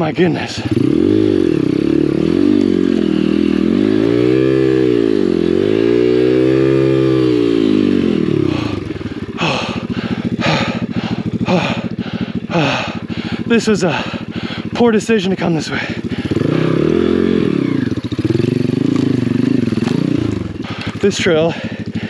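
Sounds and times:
motorbike engine revving: 0:00.0 - 0:22.0.

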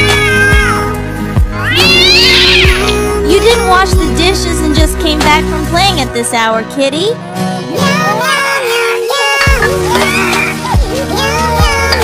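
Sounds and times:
background music with beat: 0:00.0 - 0:06.1, 0:09.3 - 0:12.0
cat meowing: 0:01.6 - 0:03.0.

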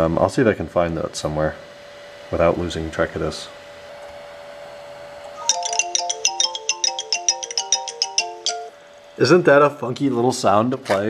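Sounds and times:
computer jingle of plinking notes: 0:05.4 - 0:08.7.

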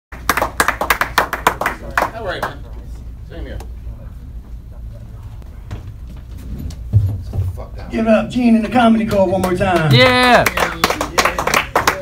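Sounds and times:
people clapping: 0:00.1 - 0:02.7, 0:08.6 - 0:12.0.

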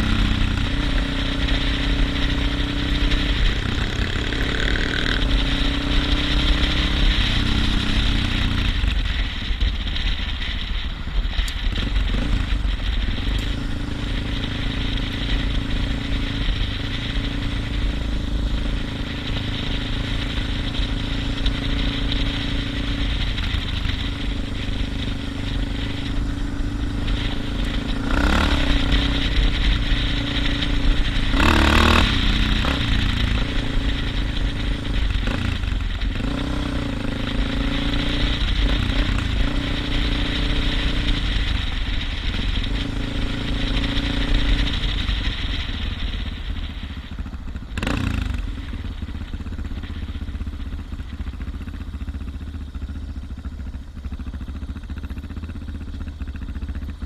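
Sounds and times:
motorcycle engine running: 0:00.0 - 0:57.0
road and wind noise: 0:00.0 - 0:57.0.

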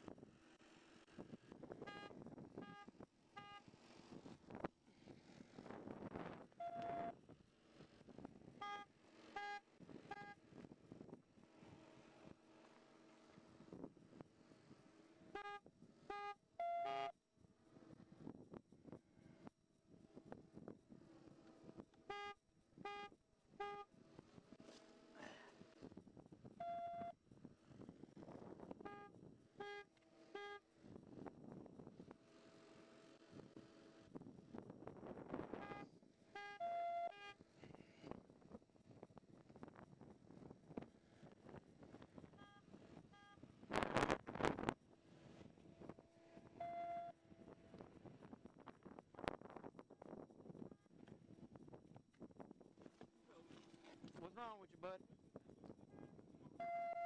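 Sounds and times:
short electronic beeps: 0:01.9 - 0:03.6, 0:06.6 - 0:07.1, 0:08.6 - 0:10.4, 0:16.2 - 0:17.1, 0:26.6 - 0:27.2, 0:35.6 - 0:37.2, 0:46.6 - 0:47.2, 0:56.6 - 0:57.0
single lower tone: 0:56.6 - 0:57.0.

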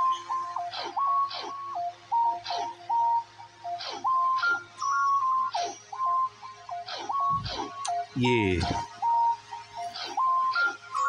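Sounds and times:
steady low hum: 0:07.3 - 0:08.8.

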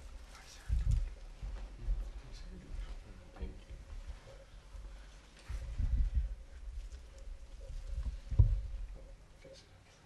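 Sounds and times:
low muffled thumps: 0:05.5 - 0:06.8, 0:07.9 - 0:09.0.

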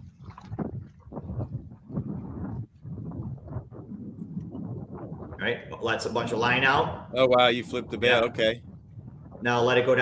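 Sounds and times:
water rumbling against hull: 0:00.0 - 0:10.0
wind buffeting microphone: 0:00.0 - 0:10.0.

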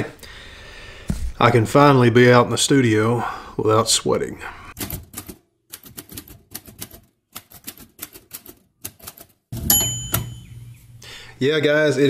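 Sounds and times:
typewriter keys clicking: 0:04.8 - 0:09.3
typewriter bell ring: 0:09.6 - 0:10.8.

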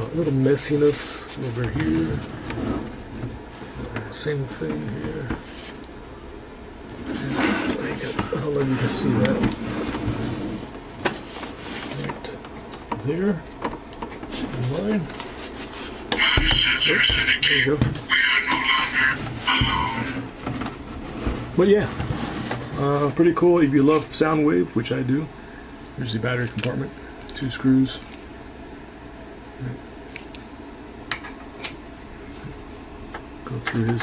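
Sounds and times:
low room hum: 0:00.0 - 0:34.0.

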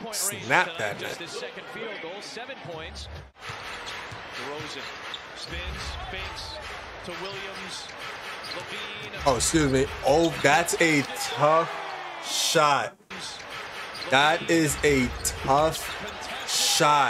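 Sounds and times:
sports commentary: 0:00.0 - 0:03.1, 0:04.3 - 0:13.4, 0:14.0 - 0:17.0.

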